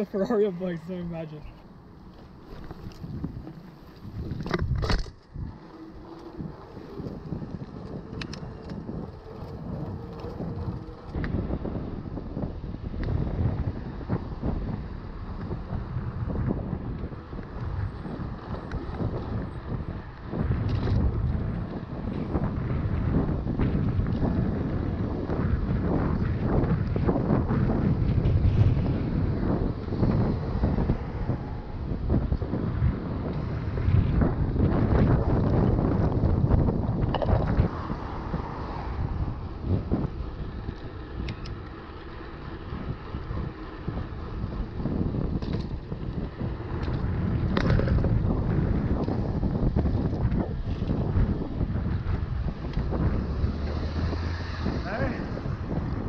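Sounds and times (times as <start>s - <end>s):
bike tyre and road noise: 0.0s - 56.0s
wind buffeting microphone: 0.0s - 56.0s.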